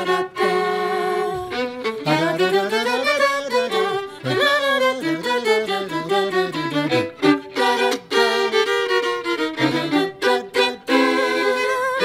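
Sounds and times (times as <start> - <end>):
two fiddles playing: 0.0 - 12.0.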